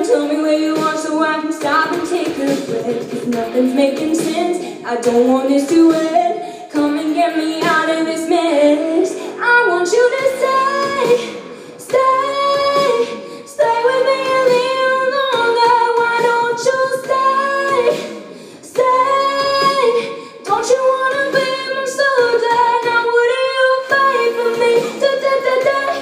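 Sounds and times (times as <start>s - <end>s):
woman singing into a microphone: 0.0s - 26.0s.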